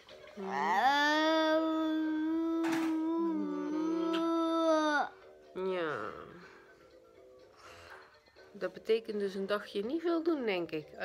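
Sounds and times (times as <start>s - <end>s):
toddler wailing: 0.4s - 5.1s.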